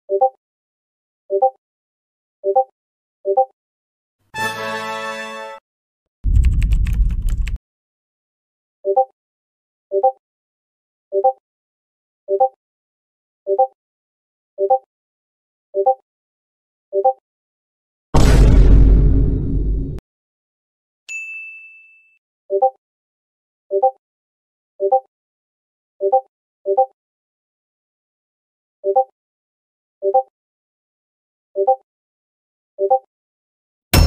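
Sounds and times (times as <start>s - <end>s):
heavy low rumble: 6.3s - 7.6s, 18.2s - 20.0s
keyboard typing: 6.3s - 7.6s
bright bell ding: 21.1s - 22.2s.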